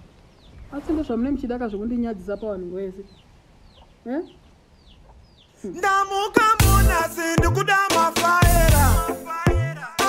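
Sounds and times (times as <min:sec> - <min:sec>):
chicks peeping: 0:02.3 - 0:06.5.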